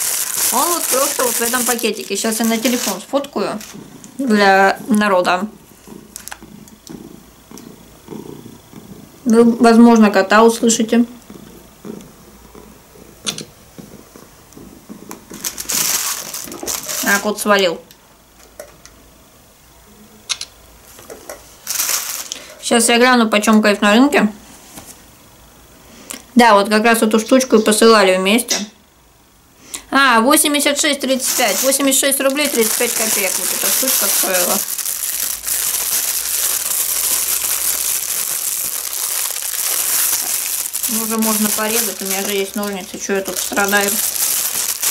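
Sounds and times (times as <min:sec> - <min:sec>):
rustling: 0:00.0 - 0:04.1, 0:15.3 - 0:17.3, 0:21.6 - 0:22.4, 0:31.0 - 0:44.9
plastic bag crinkling: 0:00.0 - 0:05.1, 0:05.9 - 0:06.6, 0:15.3 - 0:17.5, 0:21.6 - 0:22.5, 0:31.0 - 0:44.9
cat purring: 0:03.5 - 0:09.6, 0:10.6 - 0:17.0.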